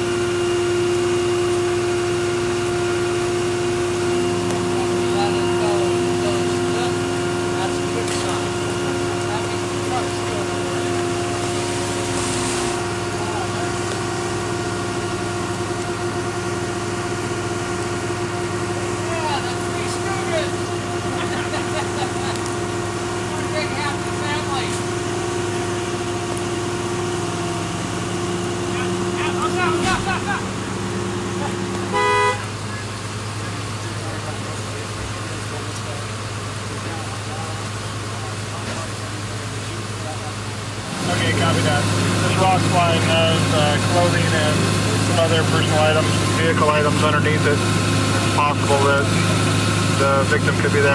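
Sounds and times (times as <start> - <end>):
engine idling: 0.0 - 50.9
vehicle horn toot: 31.9 - 32.6.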